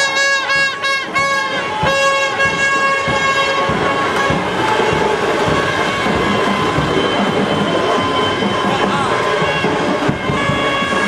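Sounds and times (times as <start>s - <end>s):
high wind instrument tone: 0.0s - 11.0s
irregular drum beats: 0.0s - 11.0s.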